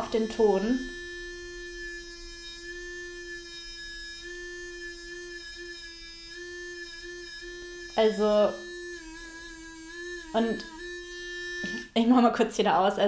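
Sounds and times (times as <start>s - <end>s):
electric toothbrush buzzing: 0.0s - 12.4s.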